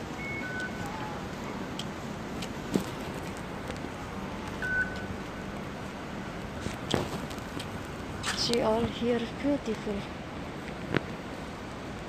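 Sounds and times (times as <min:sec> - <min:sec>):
outdoor background noise: 0:00.0 - 0:12.0
short electronic beep: 0:00.2 - 0:00.8.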